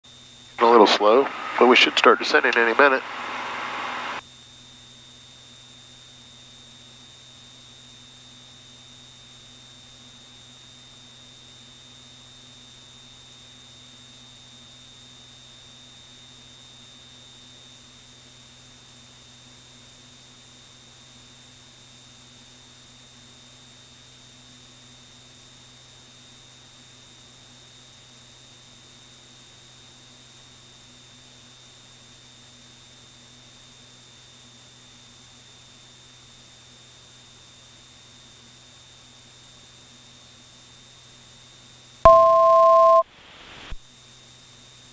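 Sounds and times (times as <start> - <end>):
aircraft cockpit drone: 0.6 - 4.2, 42.1 - 43.7.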